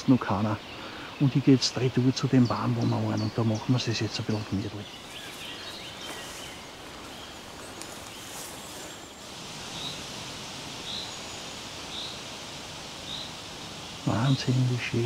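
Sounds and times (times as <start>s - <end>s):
faint bird chirps: 0.0s - 15.0s.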